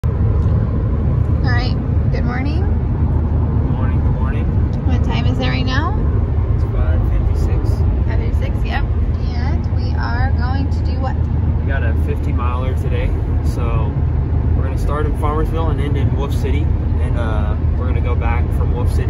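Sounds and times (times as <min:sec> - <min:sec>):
car cabin rumble: 0:00.0 - 0:19.0.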